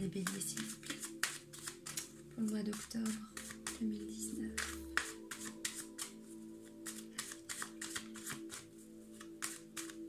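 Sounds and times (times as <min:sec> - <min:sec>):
background music with held tones: 0:00.0 - 0:10.0
cards being shuffled by hand: 0:00.0 - 0:10.0.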